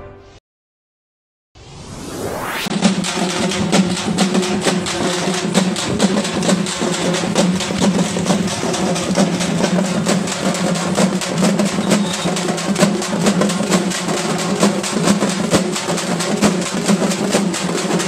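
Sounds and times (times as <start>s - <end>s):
marching drums beating: 2.7s - 18.0s.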